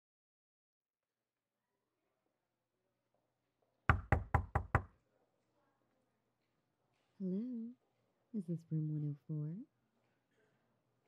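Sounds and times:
knuckles knocking on door: 3.9s - 4.9s.

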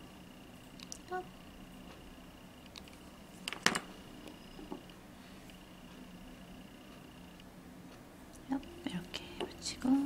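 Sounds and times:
soft speech: 1.0s - 1.3s
faint steady high tone: 4.3s - 4.8s.

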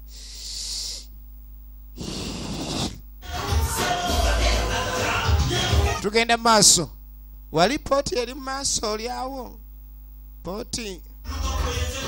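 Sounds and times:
electrical mains hum: 0.0s - 12.0s.

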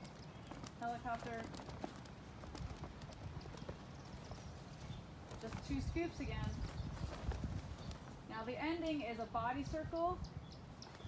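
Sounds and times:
silk flag flapping: 0.0s - 8.3s.

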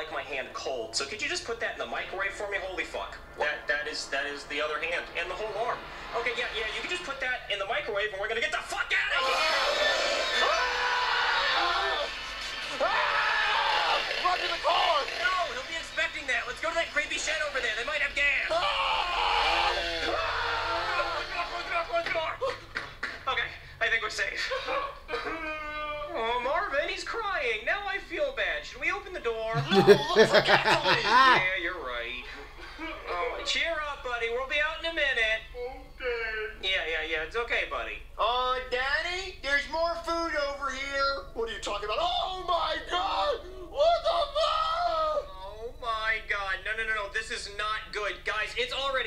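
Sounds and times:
voices screaming and wailing: 9.2s - 15.6s, 18.5s - 21.6s
high-pitched wordless cries: 29.6s - 31.5s.

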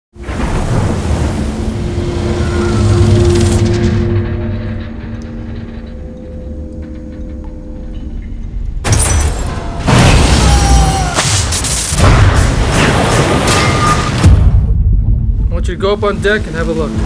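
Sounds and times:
loud rush with deep rumble: 0.2s - 5.8s, 14.2s - 17.0s
low droning tones: 0.2s - 8.8s.

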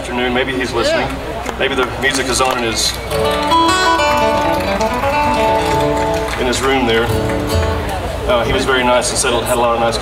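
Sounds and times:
acoustic guitar picked notes: 3.0s - 8.6s.

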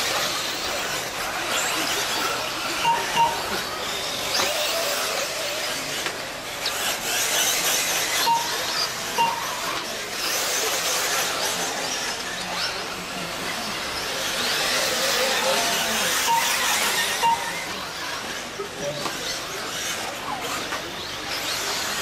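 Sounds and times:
rc car motors whining: 0.0s - 22.0s
tyre and track noise: 0.0s - 22.0s
short electronic beeps: 2.8s - 3.7s, 8.1s - 9.8s, 16.2s - 17.8s.

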